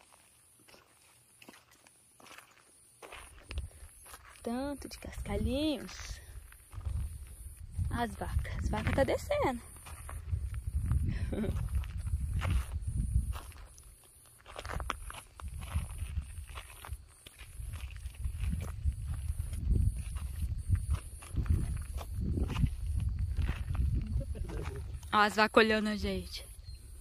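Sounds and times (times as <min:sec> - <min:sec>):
footsteps crunching on gravel: 0:00.0 - 0:25.4
wind rumble on microphone: 0:04.9 - 0:13.8, 0:14.6 - 0:27.0.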